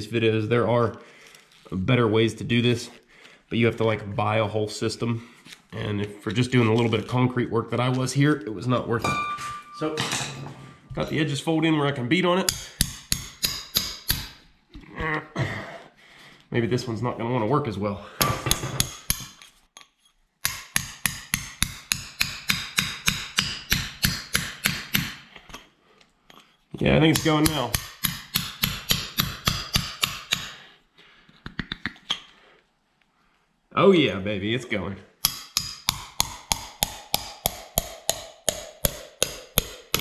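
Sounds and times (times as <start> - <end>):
hammer striking metal rod: 9.0 - 10.3, 12.4 - 14.4, 18.2 - 19.4, 20.4 - 25.2, 27.1 - 30.6, 35.2 - 40.0.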